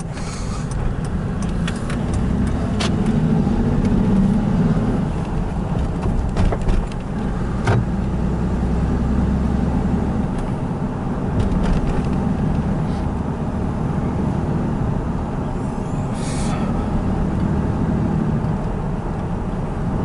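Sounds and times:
car engine and tyre drone: 0:00.0 - 0:20.0.

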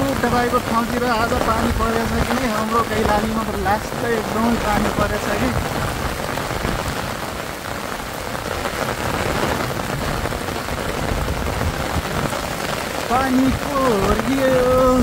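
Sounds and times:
heavy rain on umbrella: 0:00.0 - 0:15.0.

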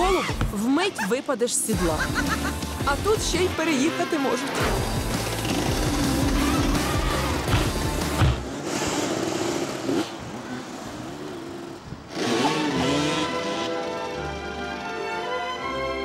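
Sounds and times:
background music: 0:00.0 - 0:08.5, 0:12.2 - 0:16.0
dirt bike engines revving: 0:01.7 - 0:14.3.

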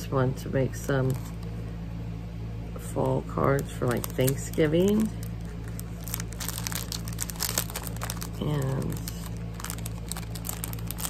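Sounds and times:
plastic sleeve crinkling: 0:00.9 - 0:01.6, 0:02.8 - 0:11.0.

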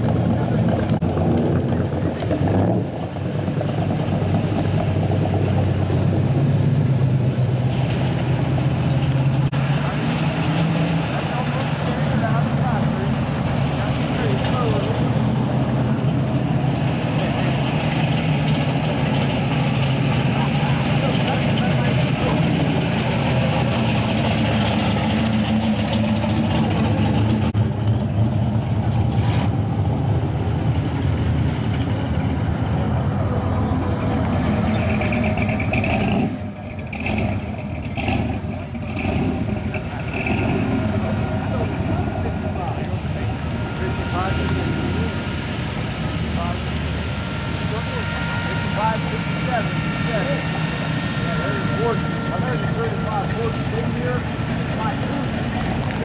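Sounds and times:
car engines rumbling past: 0:00.0 - 0:56.0.

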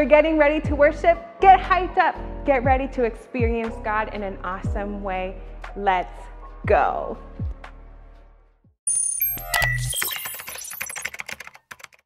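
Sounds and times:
background music: 0:00.0 - 0:10.0
fast clicks like typing: 0:09.6 - 0:12.0.

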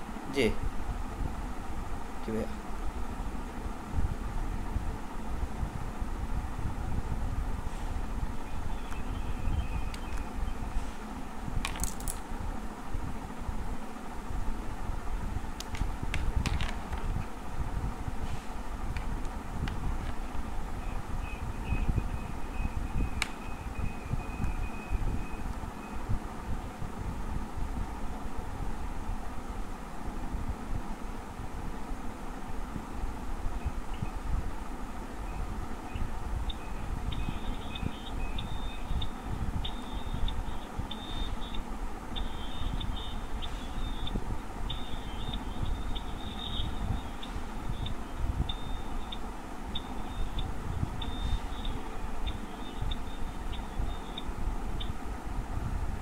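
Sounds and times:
low rumbling with wind buffeting: 0:00.0 - 0:56.0.

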